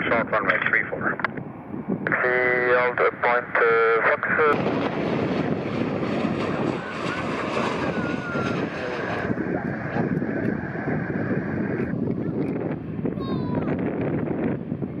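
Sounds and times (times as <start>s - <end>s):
wind on microphone: 0.0s - 2.7s, 4.5s - 15.0s
jet engines roaring: 0.0s - 15.0s.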